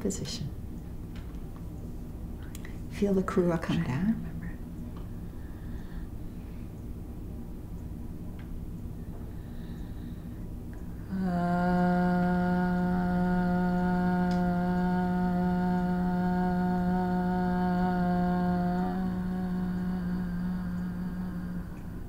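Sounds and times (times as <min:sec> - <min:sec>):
woman singing long note: 0:11.0 - 0:22.0.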